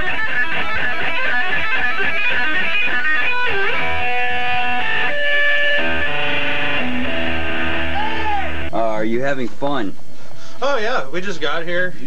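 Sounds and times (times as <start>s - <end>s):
electric guitar chords: 0.0s - 8.8s.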